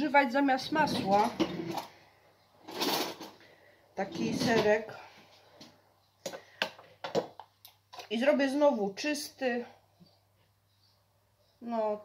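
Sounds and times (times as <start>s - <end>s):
object scraping on counter: 0.6s - 2.0s, 4.0s - 4.8s.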